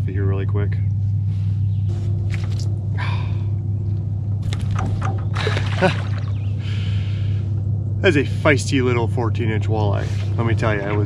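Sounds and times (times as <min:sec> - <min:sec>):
steady low hum: 0:00.0 - 0:11.0
fish splashing in water: 0:04.4 - 0:06.5.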